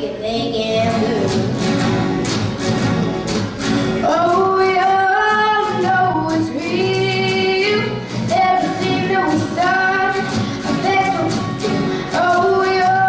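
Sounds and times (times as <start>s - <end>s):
woman singing blues: 0.0s - 1.7s, 4.0s - 13.0s
strummed acoustic guitars: 0.0s - 13.0s.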